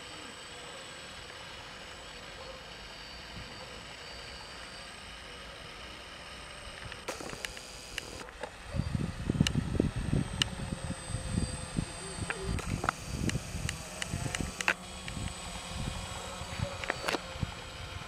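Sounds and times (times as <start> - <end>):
sharp clicks: 7.0 - 8.2, 12.3 - 15.4
drone hovering hum: 7.1 - 8.2, 10.0 - 18.0.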